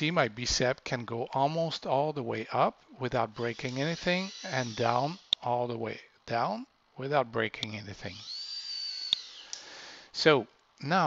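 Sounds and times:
servo motor whining: 3.5s - 5.4s, 8.0s - 9.6s.

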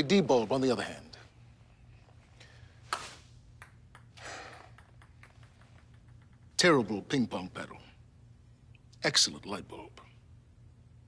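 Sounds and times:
ping pong ball click: 3.6s - 6.5s.

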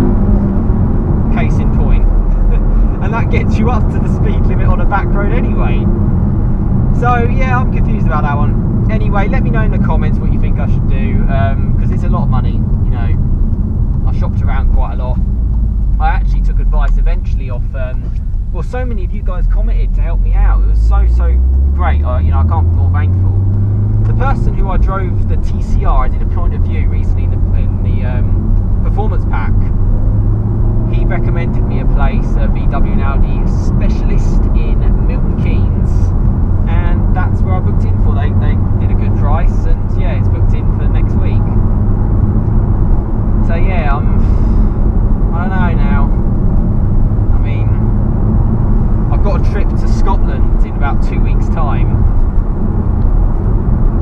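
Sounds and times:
car engine drone: 0.0s - 54.0s
road noise: 0.0s - 54.0s
man talking: 1.3s - 5.9s, 6.9s - 13.2s, 14.1s - 15.2s, 16.0s - 23.5s, 24.1s - 29.7s, 30.9s - 36.1s, 36.7s - 41.6s, 43.4s - 44.6s, 45.3s - 46.2s, 47.3s - 47.9s, 49.1s - 52.0s.

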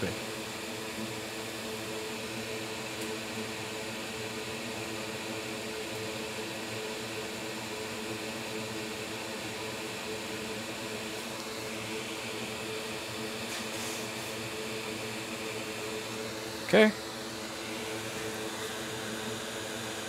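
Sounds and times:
fan hum: 0.0s - 20.0s.

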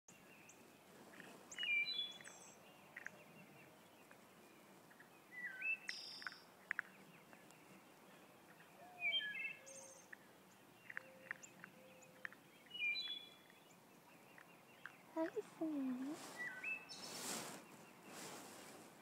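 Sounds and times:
birds chirping: 0.1s - 19.0s
faint clicks: 2.2s - 3.2s, 5.9s - 7.6s, 10.0s - 12.5s.

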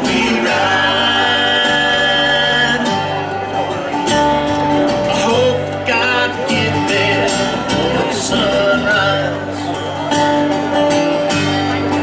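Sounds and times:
country band playing: 0.0s - 12.0s.

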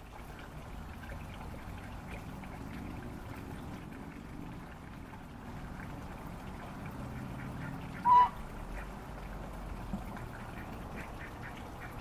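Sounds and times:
faint steady background noise: 0.0s - 12.0s
waterfowl call: 7.4s - 8.9s.

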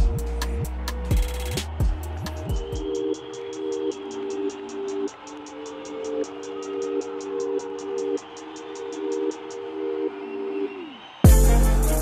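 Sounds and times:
held music chords: 0.0s - 12.0s.

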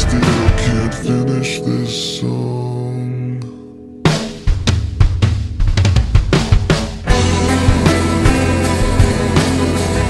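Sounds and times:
drum kit beating: 0.0s - 1.3s, 4.1s - 10.0s
pitched-down rock band: 0.0s - 10.0s.

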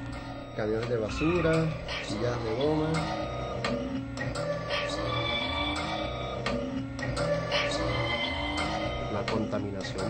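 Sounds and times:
electronic sound-art music: 0.0s - 10.0s.

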